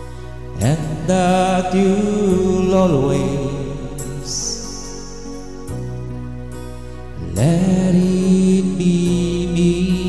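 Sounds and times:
recorded backing music: 0.0s - 10.0s
man singing into a microphone: 0.6s - 5.3s, 7.2s - 10.0s.

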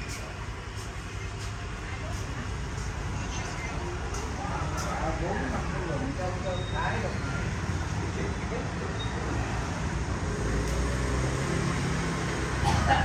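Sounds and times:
motorbike and street traffic rumble: 0.0s - 13.0s.

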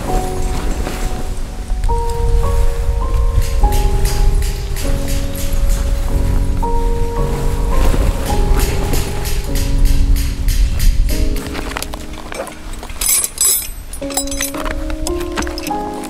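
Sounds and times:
background music sustained notes: 0.0s - 16.0s
metal tent pegs clinking: 11.3s - 16.0s.

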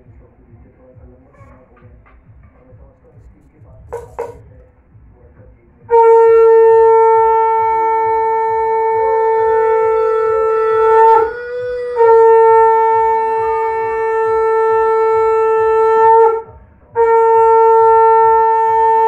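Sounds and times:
conch shell blasts: 5.9s - 19.0s.

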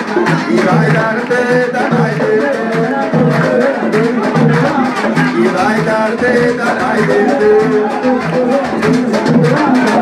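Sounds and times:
hand drums in dance rhythm: 0.0s - 10.0s
hands clapping: 0.0s - 10.0s
people singing: 0.0s - 10.0s.

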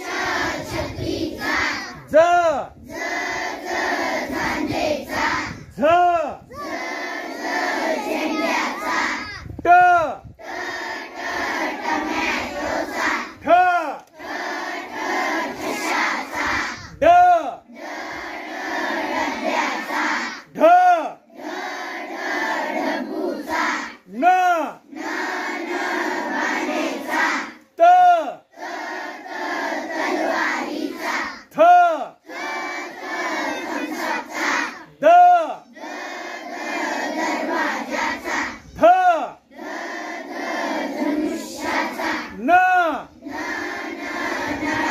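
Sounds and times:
children chanting in unison: 0.0s - 9.5s, 10.3s - 44.9s.

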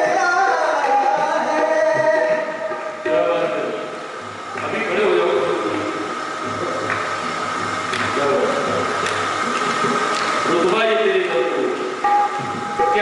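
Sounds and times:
man singing: 0.0s - 3.5s.

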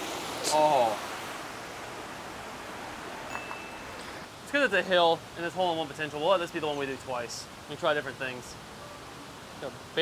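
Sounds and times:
running water: 0.0s - 10.0s
brief high ringing tone: 3.3s - 4.0s.

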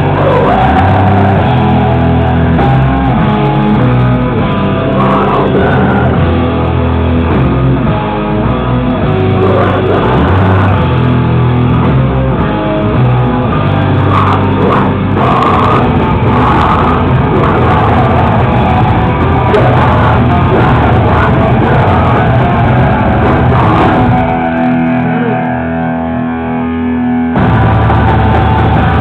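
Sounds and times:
live rock band playing loudly: 0.0s - 29.0s.

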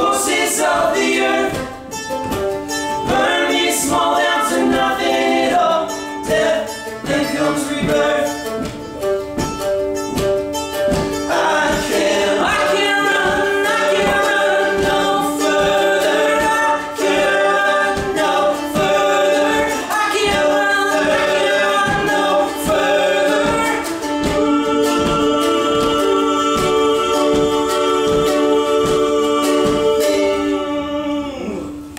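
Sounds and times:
men singing in harmony: 0.0s - 1.8s, 3.0s - 8.7s, 11.2s - 31.9s
strummed acoustic guitar: 0.0s - 31.1s.

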